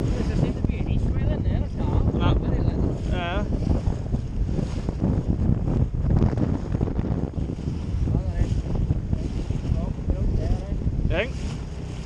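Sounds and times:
water noise: 0.0s - 12.0s
wind buffeting microphone: 0.0s - 12.0s.

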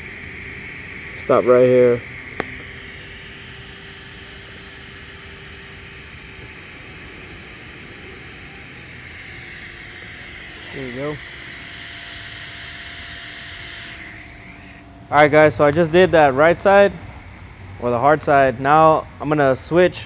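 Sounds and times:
welding arc hissing: 0.0s - 20.0s.

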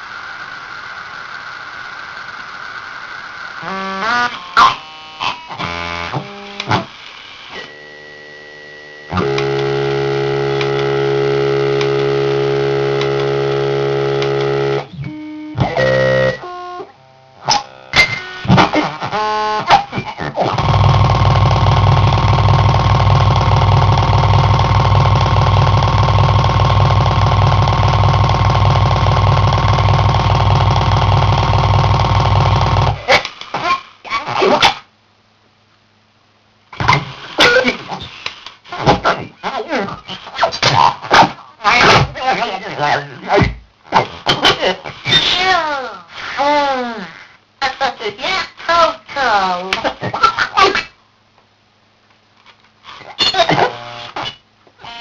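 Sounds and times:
steady held electronic tone: 0.0s - 6.7s, 7.5s - 18.5s, 20.5s - 33.1s
steady buzzing drone: 0.0s - 19.6s, 20.5s - 33.1s
toy voice glitching stutters: 3.6s - 6.9s, 18.3s - 34.8s, 53.1s - 54.1s.

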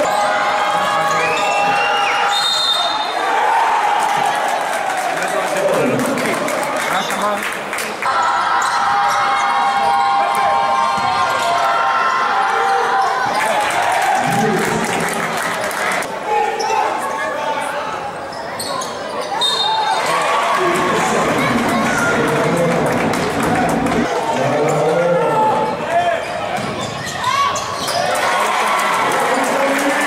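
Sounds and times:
voices in a hall: 0.0s - 30.0s.

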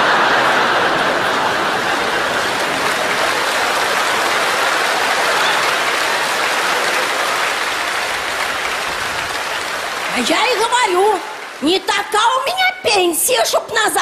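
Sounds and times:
audience applauding: 0.0s - 13.4s.

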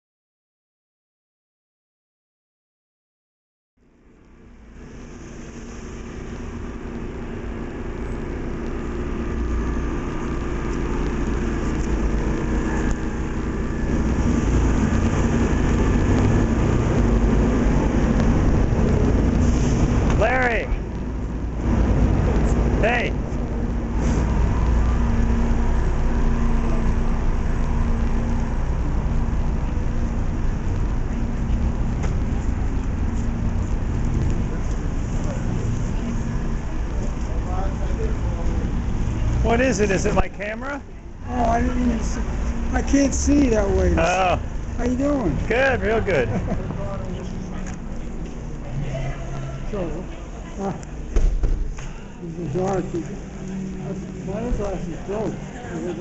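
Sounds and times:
road traffic rumble: 3.8s - 56.0s.

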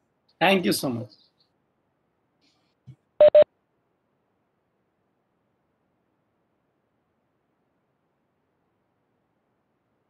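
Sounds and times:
electronic beeps: 3.2s - 3.4s.

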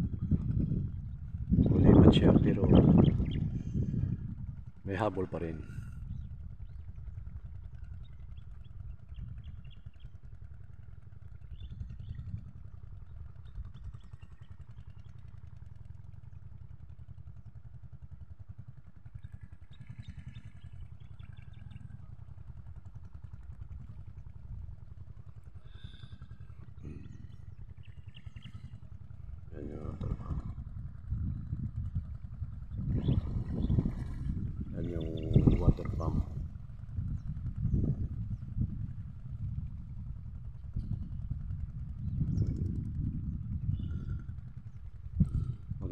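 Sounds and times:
wind buffeting microphone: 0.0s - 10.3s, 11.0s - 14.1s, 19.8s - 45.9s.

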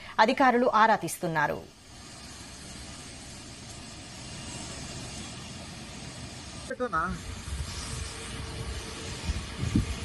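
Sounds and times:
rumble and hiss of engines: 0.0s - 10.0s.

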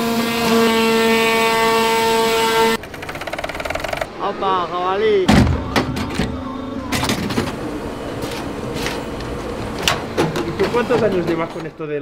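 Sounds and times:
industrial sewing machine stitching: 2.8s - 4.1s.

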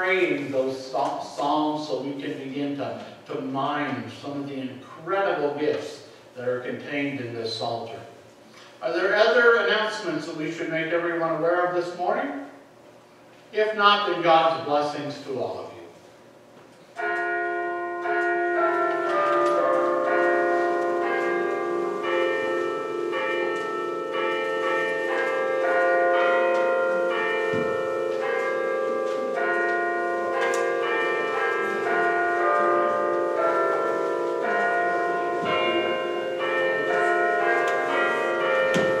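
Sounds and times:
church bells ringing: 0.0s - 5.6s, 17.0s - 39.0s.

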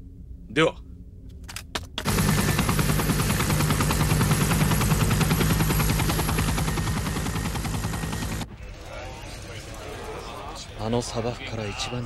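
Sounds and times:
machine pulsing over humming drone: 2.0s - 11.3s.

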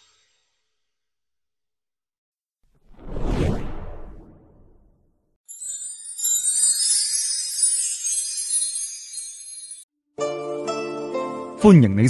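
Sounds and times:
deep whoosh: 2.8s - 5.0s.

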